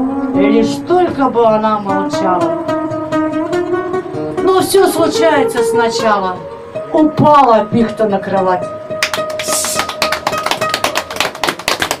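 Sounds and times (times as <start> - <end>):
small audience clapping: 9.0 - 12.0.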